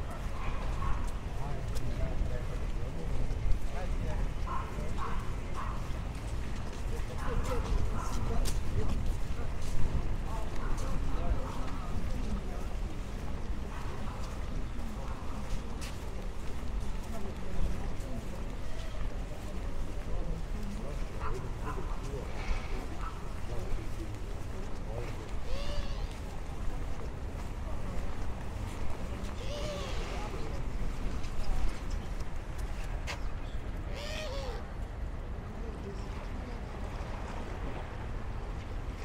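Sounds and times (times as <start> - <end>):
faint voices: 0.0 - 39.0.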